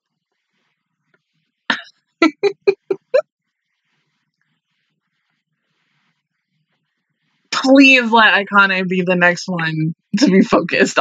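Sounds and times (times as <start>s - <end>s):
woman laughing: 2.2s - 3.2s, 10.2s - 10.6s.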